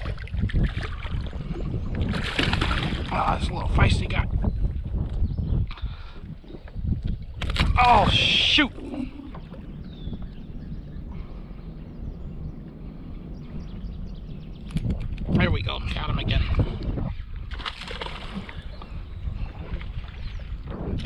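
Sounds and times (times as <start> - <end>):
low rumble of wind and water: 0.0 - 21.0.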